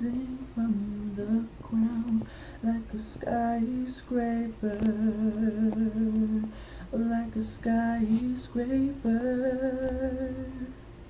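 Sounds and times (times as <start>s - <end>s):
young man singing unaccompanied: 0.0s - 10.8s.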